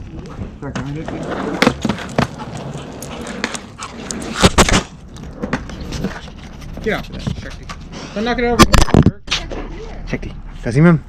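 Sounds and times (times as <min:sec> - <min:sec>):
skateboard wheels rumbling on concrete: 0:00.0 - 0:07.9
skateboard clacking: 0:00.7 - 0:07.8.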